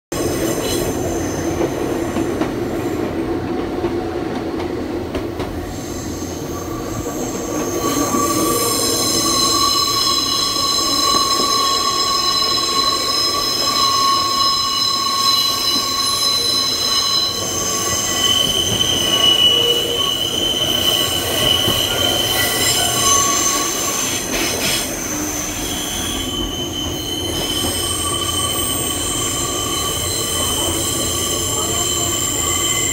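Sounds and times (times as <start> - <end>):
train wheels squealing: 0.2 - 3.1, 5.6 - 32.9
train running gear rumble: 0.3 - 32.9.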